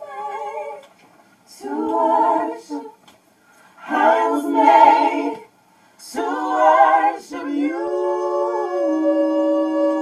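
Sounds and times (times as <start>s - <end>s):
vocal group singing a cappella: 0.0s - 10.0s.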